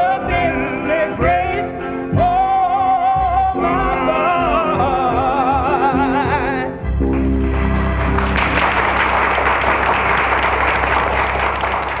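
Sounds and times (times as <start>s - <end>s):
audience applause: 7.1s - 12.0s.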